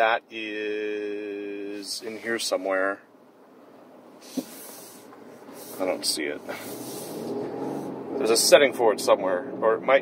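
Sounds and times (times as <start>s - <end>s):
soft hiss: 0.0s - 8.4s
car engine running: 2.0s - 10.0s.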